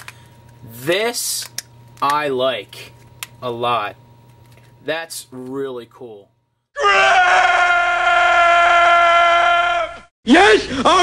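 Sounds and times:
long wailing cry: 6.8 - 10.1.

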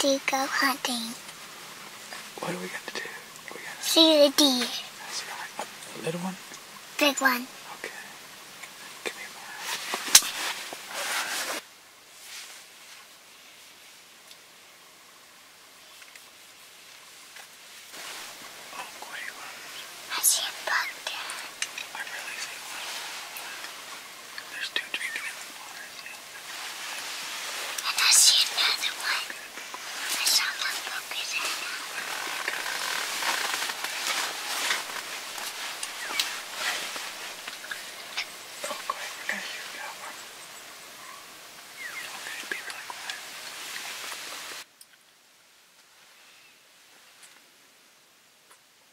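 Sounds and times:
man and boy whispering: 0.0 - 1.3, 2.1 - 11.6, 18.7 - 40.3, 41.8 - 43.7.

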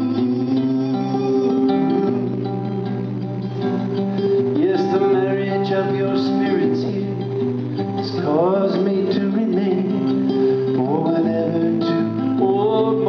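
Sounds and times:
acoustic guitar playing chords: 0.0 - 13.0.

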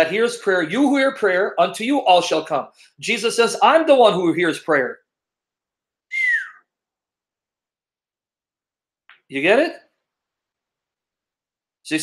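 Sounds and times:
whistle-like squeak gliding down: 6.1 - 6.6.

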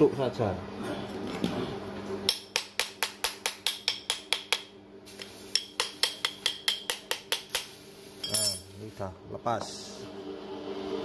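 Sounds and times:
metal tool tapping on metal: 2.3 - 8.6.

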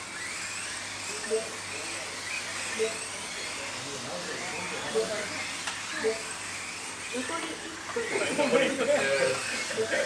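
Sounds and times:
electric toy car motors whining: 0.0 - 10.0
voices: 1.1 - 10.0.

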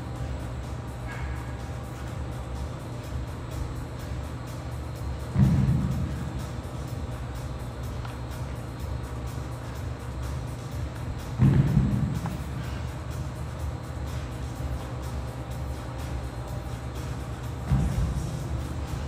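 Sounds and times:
background music: 0.0 - 19.0
dumbbells thudding on gym floor: 11.3 - 12.4.

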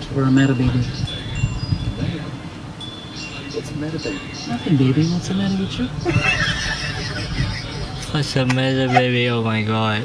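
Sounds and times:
man laughing hard: 6.0 - 8.0.

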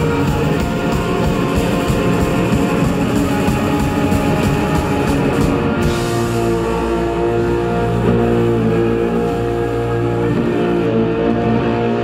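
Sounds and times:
rock band droning chord: 0.0 - 12.0.

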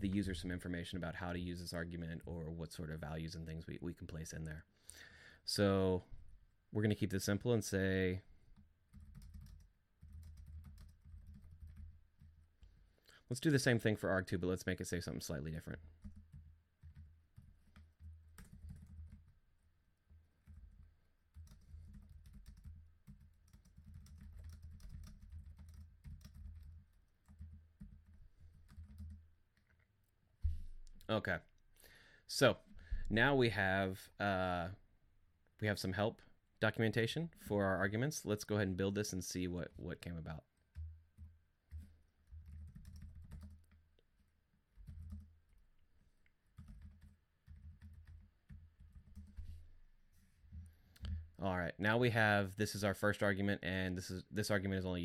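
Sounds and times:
computer keyboard typing: 8.9 - 12.5, 16.0 - 19.4, 20.4 - 29.7, 40.6 - 45.6, 46.4 - 49.4
keyboard keys clicking: 40.7 - 43.6.

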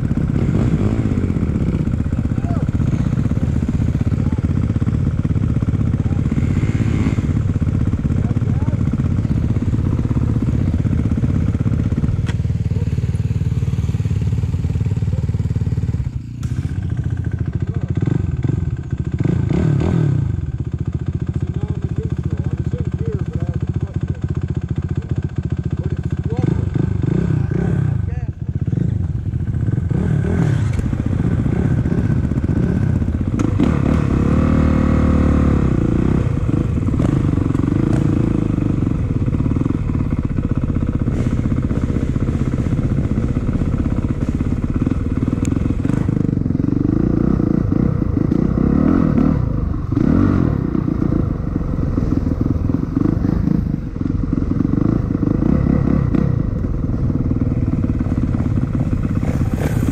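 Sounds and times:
dirt bike engines idling: 0.0 - 59.9.

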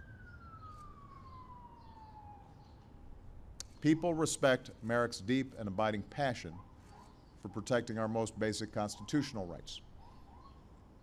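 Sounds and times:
faint siren wailing: 0.0 - 11.0.

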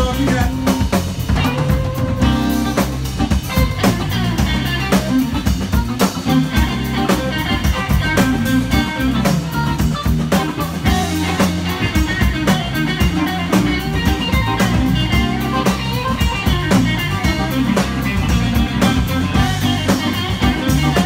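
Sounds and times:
bass line: 0.0 - 21.0
drum kit steady beat: 0.0 - 21.0
electric guitar notes: 0.0 - 21.0.

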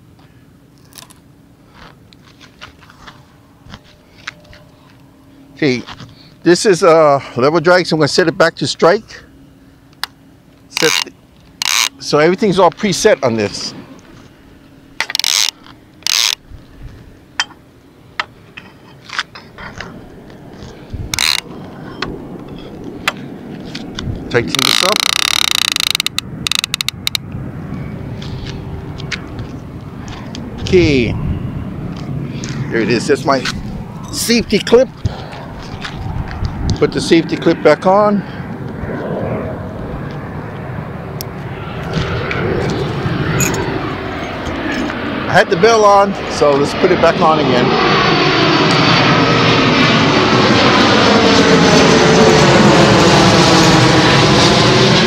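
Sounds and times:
airplane engine drone: 0.0 - 55.0
fishing reel clicking: 10.8 - 11.9, 15.1 - 16.4, 21.2 - 21.4, 24.5 - 27.2.

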